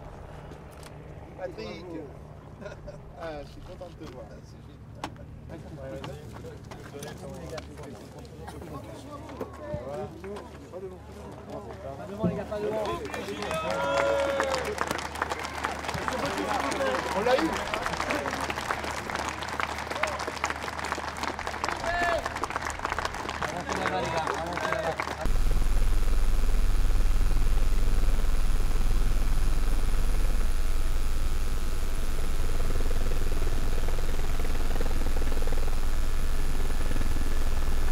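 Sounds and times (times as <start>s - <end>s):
helicopter rumble: 0.0s - 5.8s, 25.2s - 37.9s
crowd talking: 1.3s - 25.3s
thin high whine: 25.3s - 37.9s.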